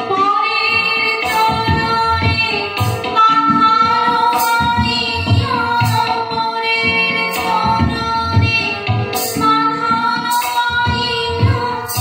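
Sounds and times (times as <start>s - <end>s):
harmonium: 0.0s - 12.0s
woman singing: 0.0s - 12.0s.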